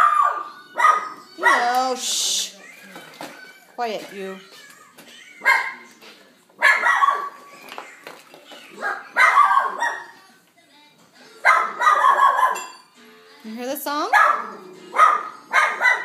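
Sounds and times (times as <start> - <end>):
dog barking: 0.0 - 1.7, 5.4 - 5.9, 6.6 - 7.4, 8.8 - 10.2, 11.4 - 12.7, 14.1 - 16.0.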